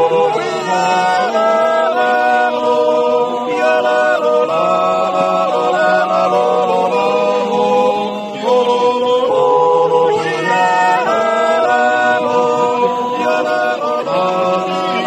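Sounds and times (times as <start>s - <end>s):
men yodelling in harmony: 0.0s - 15.0s.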